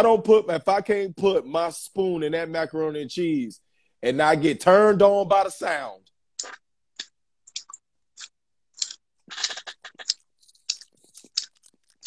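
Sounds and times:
wet mouth smacks and clicks: 0:06.4 - 0:12.0.

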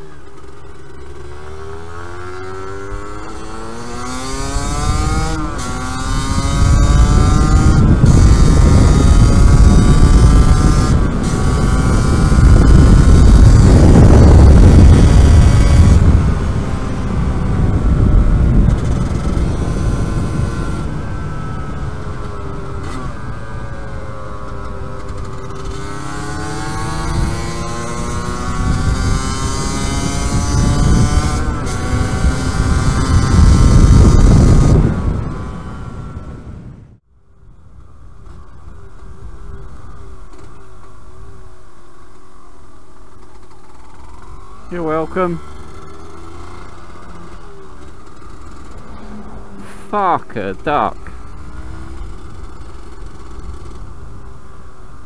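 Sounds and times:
two-stroke motorcycle engine accelerating: 0:00.0 - 0:55.0
wind rush on microphone: 0:04.0 - 0:24.0, 0:25.2 - 0:40.1.

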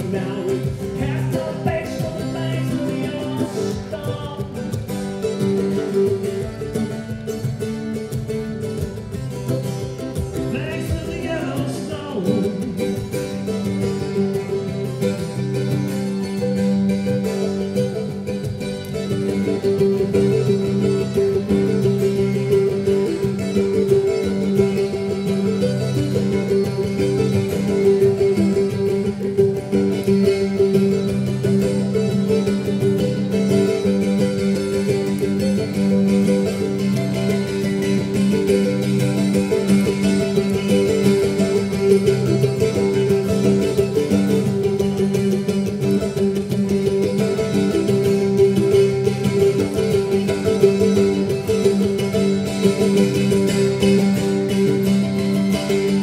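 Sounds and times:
acoustic guitar: 0:00.0 - 0:56.0
mandolin: 0:00.0 - 0:56.0.

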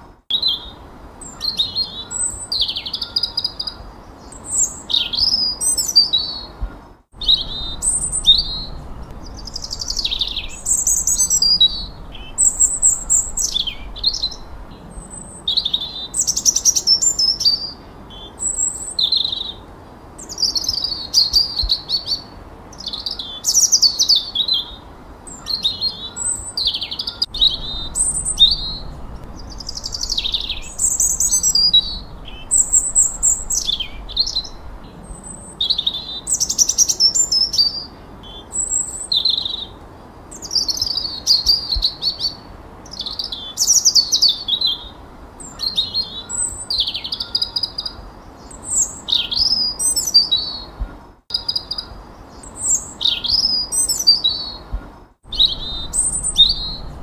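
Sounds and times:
songbirds singing: 0:00.0 - 0:57.0.

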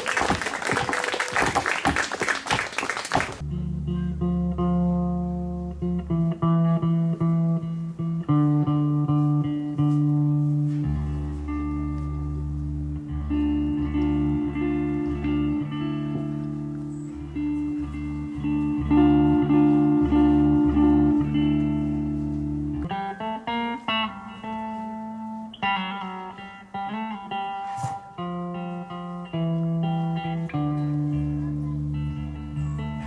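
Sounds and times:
electric guitar droning chords: 0:03.4 - 0:33.0
electric guitar picked notes: 0:03.4 - 0:33.0.

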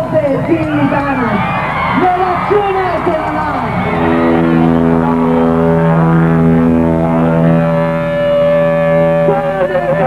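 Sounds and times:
rock band holding sustained chord: 0:00.9 - 0:10.0.

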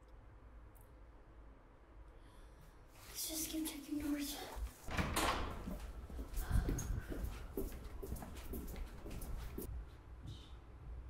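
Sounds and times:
soft knocks and rustles: 0:04.6 - 0:09.7.

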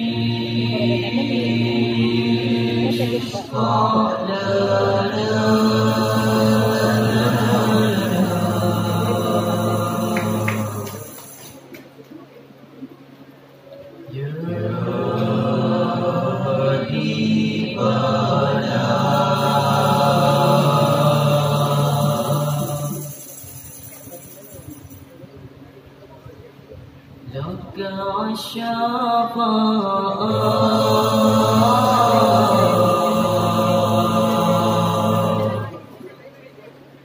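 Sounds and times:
boys chanting into microphones: 0:00.0 - 0:11.1, 0:14.1 - 0:23.2, 0:27.3 - 0:35.8.

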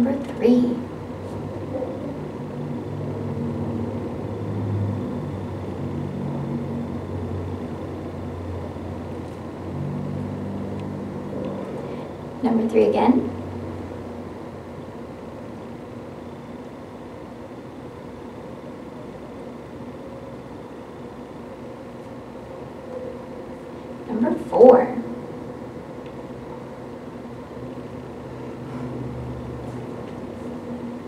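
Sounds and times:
motor running with low rumble: 0:00.0 - 0:19.2
low background hum and hiss: 0:00.0 - 0:31.0.

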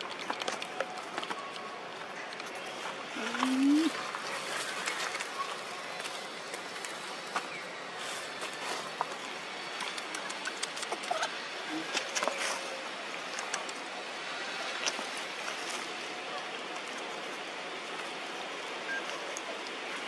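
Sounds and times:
steady outdoor hiss: 0:00.0 - 0:20.0.

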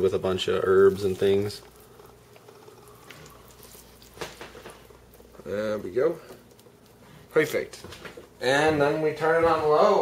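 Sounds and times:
soft wet squelching of meat: 0:00.4 - 0:08.4.

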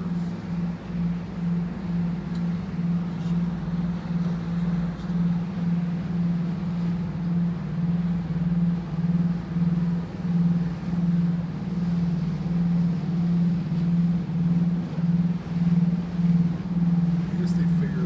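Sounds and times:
ship machinery hum throbbing: 0:00.0 - 0:18.0.

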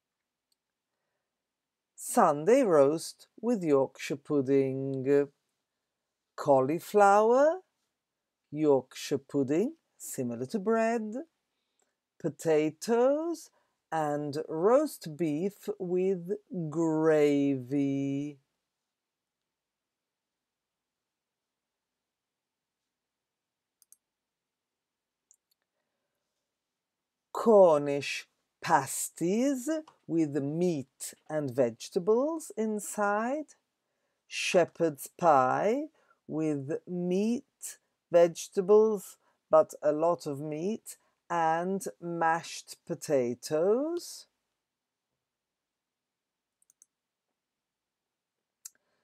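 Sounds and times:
faint clicks: 0:23.8 - 0:24.0, 0:46.6 - 0:46.9.

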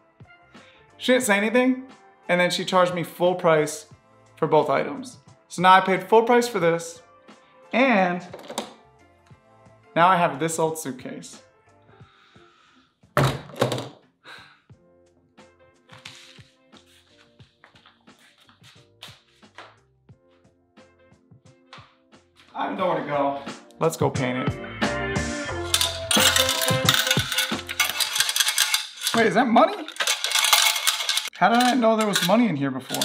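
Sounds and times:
background music: 0:00.0 - 0:33.0
suitcase thudding on floor: 0:13.2 - 0:13.9
coins rattling in gumball machine: 0:25.6 - 0:33.0.

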